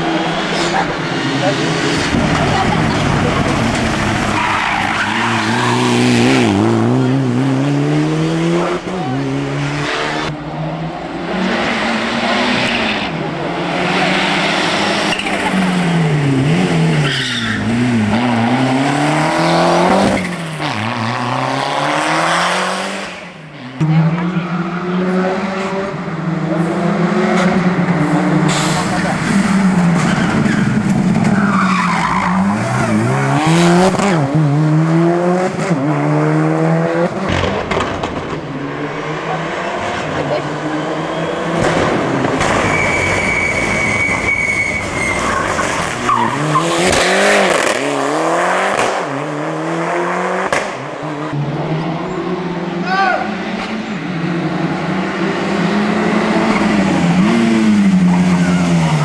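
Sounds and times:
rally car engines revving: 0.0s - 59.0s
tyres squealing: 42.6s - 46.9s.

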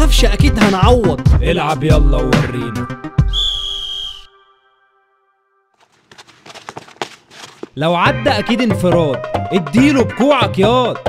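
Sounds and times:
referee's whistle blast: 3.3s - 4.4s.

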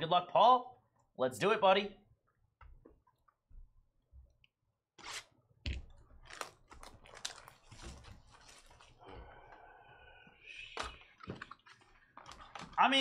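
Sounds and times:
wrapper and cardboard tearing: 6.2s - 9.0s.

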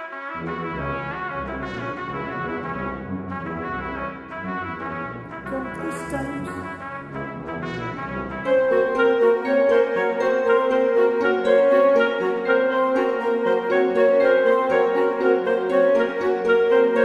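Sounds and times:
orchestral music with brass: 0.0s - 17.0s.

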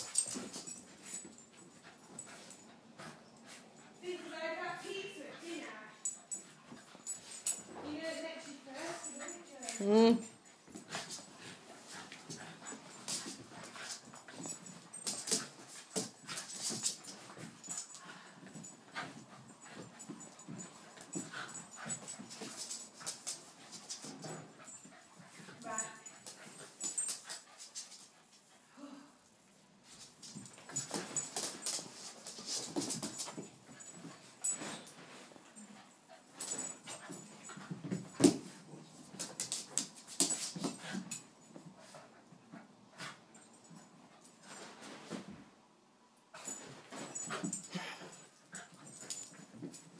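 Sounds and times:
dogs scuffling and rustling: 0.0s - 28.6s, 29.8s - 45.6s, 46.3s - 49.9s.

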